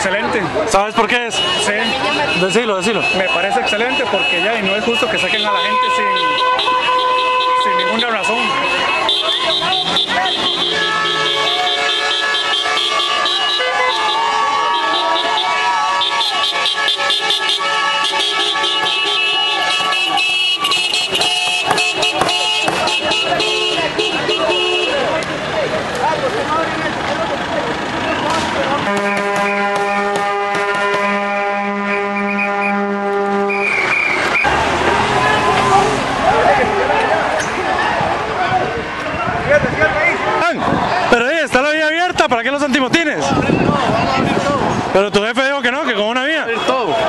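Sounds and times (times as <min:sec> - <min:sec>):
voices: 0:00.0 - 0:47.0
vehicle horns blowing: 0:01.2 - 0:25.2, 0:28.0 - 0:36.0, 0:45.6 - 0:47.0.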